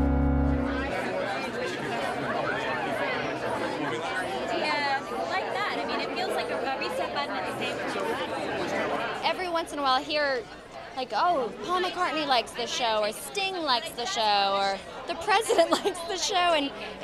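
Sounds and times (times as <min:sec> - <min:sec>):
title music chord with bass: 0:00.0 - 0:01.3
crowd chattering: 0:00.0 - 0:17.0.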